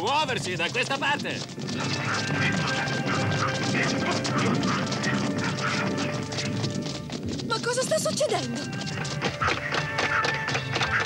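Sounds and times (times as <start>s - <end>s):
clatter of sound effects: 0.0s - 11.0s.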